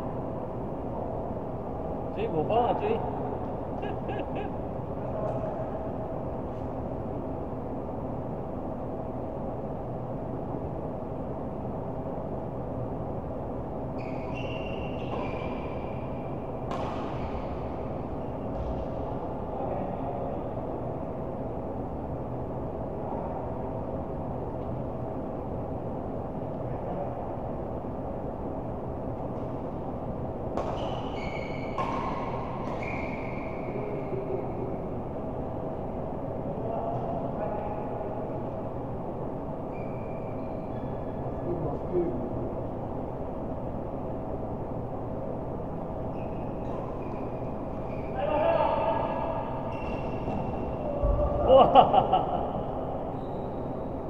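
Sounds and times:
steady hall hum: 0.0 - 54.0
shoes squeaking on court: 14.0 - 16.0, 30.6 - 33.7, 46.1 - 48.2, 49.7 - 50.9
racket hitting shuttlecock: 16.6 - 17.7, 30.5 - 32.8.

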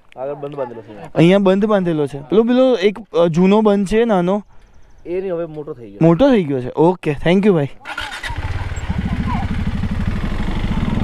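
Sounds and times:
motorcycle engine at low revs: 7.9 - 11.0.

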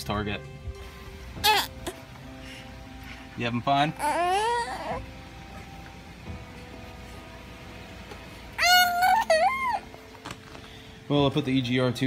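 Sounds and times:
faint background music: 0.0 - 12.0
infant squealing cry: 1.4 - 2.0, 3.7 - 5.1, 8.6 - 10.0.

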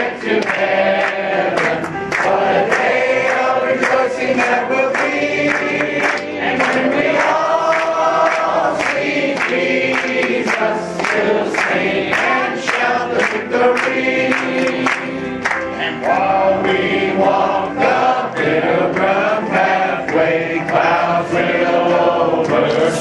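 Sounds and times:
congregation singing a hymn: 0.0 - 23.0
organ: 0.0 - 23.0
piano: 0.0 - 23.0.

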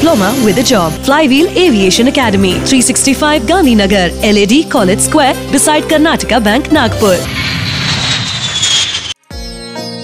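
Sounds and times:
jet airliner fly-past whine: 7.0 - 9.2.

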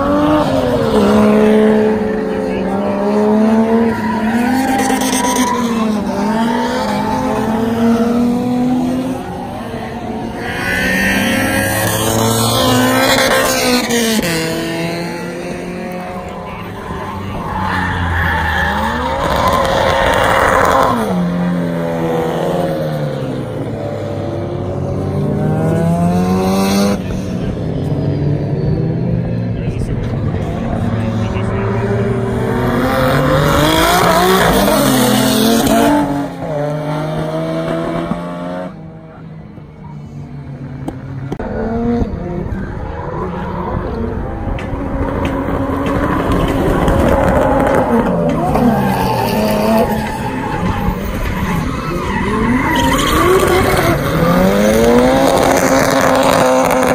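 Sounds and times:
car engines revving: 0.0 - 56.9.

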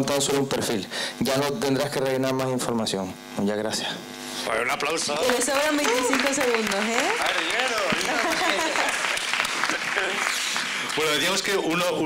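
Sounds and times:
audience applauding: 4.9 - 11.7.

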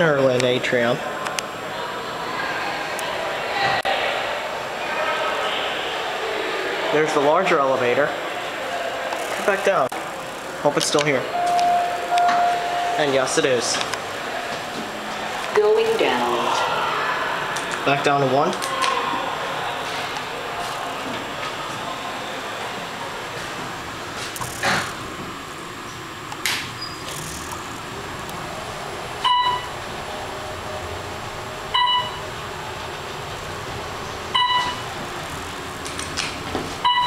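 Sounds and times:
elevator car rumbling: 11.3 - 16.8
short electronic beeps: 11.4 - 13.1, 34.4 - 34.8.

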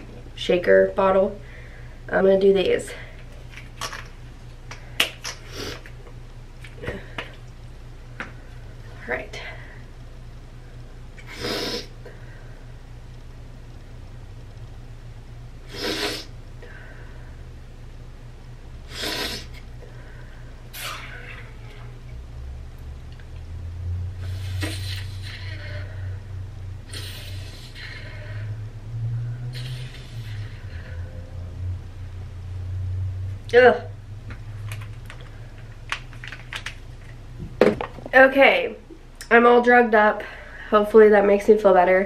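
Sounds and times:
sharp nose sniffs: 15.7 - 16.3, 18.9 - 19.6, 24.2 - 25.7, 26.9 - 28.2, 29.5 - 30.6
soft sniffs and breaths: 24.2 - 25.9, 26.8 - 28.4, 29.4 - 31.1.

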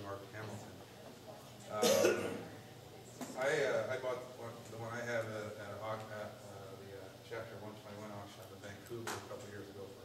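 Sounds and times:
man coughing: 1.8 - 2.5.

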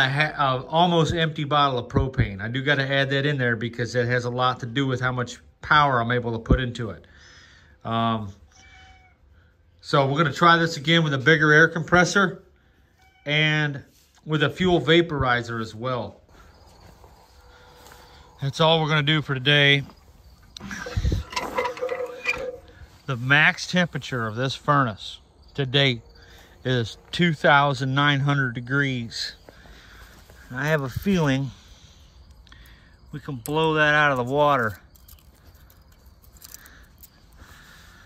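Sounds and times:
furnace lid scraping and rattling: 20.8 - 22.7.

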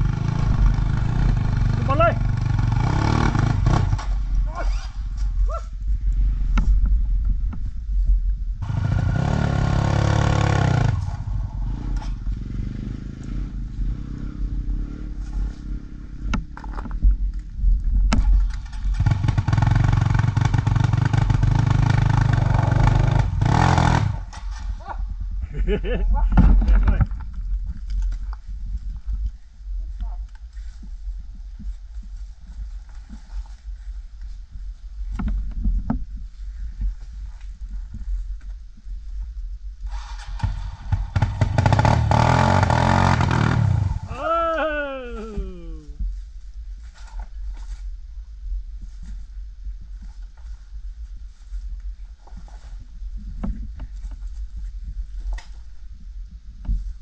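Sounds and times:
dirt bike engine revving: 0.0 - 4.2, 8.6 - 16.3, 18.7 - 24.3, 39.9 - 45.7.

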